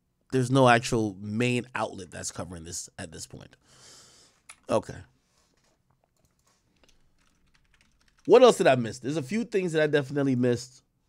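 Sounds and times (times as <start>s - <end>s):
computer keyboard clicks: 5.6s - 8.3s.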